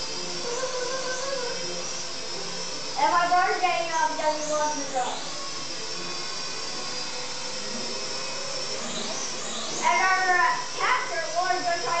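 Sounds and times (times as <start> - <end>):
toy drone motors whining: 0.0 - 12.0.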